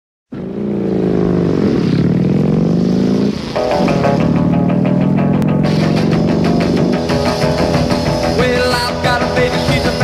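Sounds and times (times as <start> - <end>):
motorcycle engine revving: 0.3 - 10.0
music with steady beat: 3.6 - 10.0.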